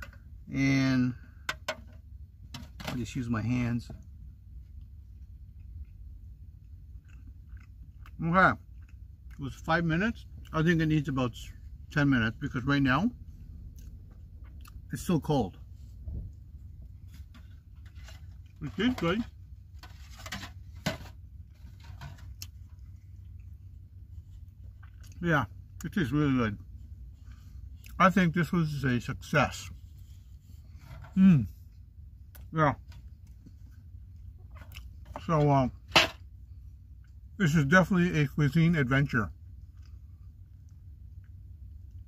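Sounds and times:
low steady hum: 0.0 - 42.0
person chewing: 4.7 - 9.4, 13.5 - 14.9, 22.3 - 25.8, 33.1 - 35.0.

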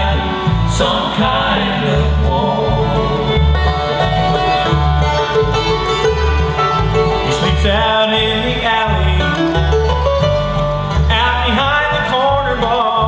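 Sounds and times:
bluegrass band playing: 0.0 - 13.0
upright bass walking: 0.0 - 13.0.

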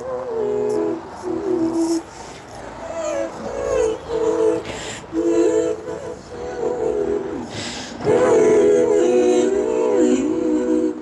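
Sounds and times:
woman singing wordless melody: 0.0 - 2.1, 2.7 - 11.0
breathy hisses: 4.7 - 5.1, 7.5 - 8.0.

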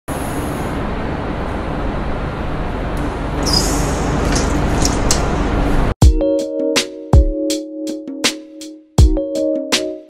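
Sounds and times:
bus engine rumble: 0.1 - 6.0
road noise: 0.1 - 6.0.

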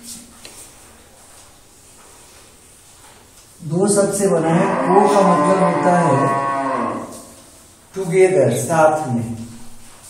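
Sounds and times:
man speaking: 3.6 - 6.4, 8.0 - 9.5.

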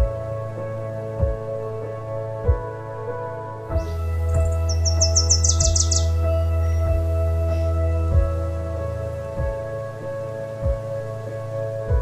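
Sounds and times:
ambient music with soft beat: 0.0 - 12.0
bird chirping: 3.7 - 7.8.

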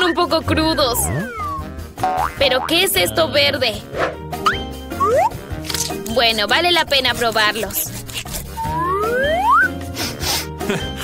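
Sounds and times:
background music: 0.0 - 11.0
cartoon whistle gliding upward: 8.6 - 9.8.

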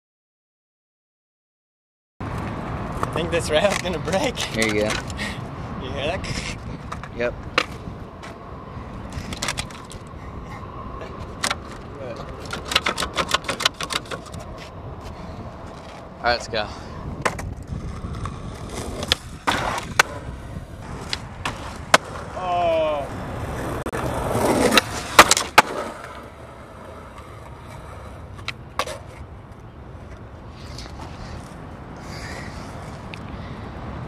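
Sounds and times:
skateboard wheels rolling on asphalt: 2.2 - 34.0
skateboard clacks: 2.3 - 5.2, 9.1 - 10.1, 11.2 - 14.7, 17.2 - 22.5, 23.5 - 29.6
skateboard scraping on rail: 9.0 - 22.5, 23.3 - 29.3, 30.1 - 33.1.

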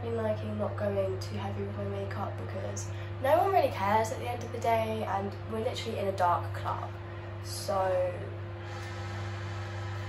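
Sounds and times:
microwave oven buzzing: 0.0 - 10.0.

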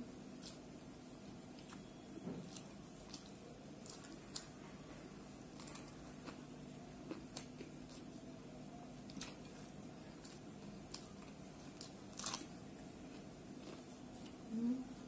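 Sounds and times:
faint hum: 0.0 - 15.0
chewing with crunches: 0.4 - 8.2, 9.0 - 14.5.

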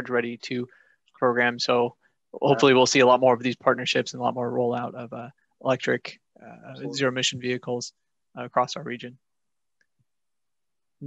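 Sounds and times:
person speaking: 0.0 - 9.1.

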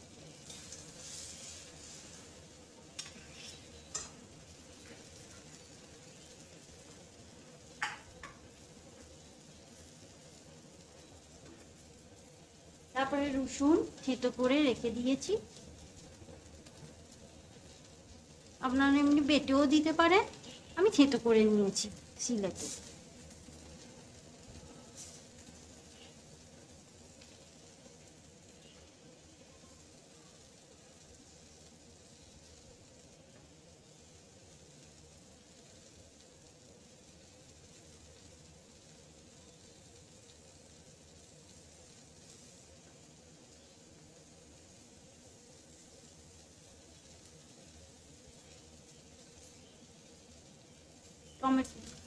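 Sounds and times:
chicken and onions sizzling: 0.0 - 52.0.

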